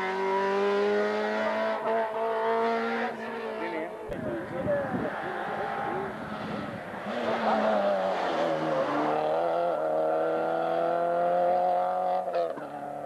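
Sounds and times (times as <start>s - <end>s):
rally car engine at high revs: 0.0s - 13.0s.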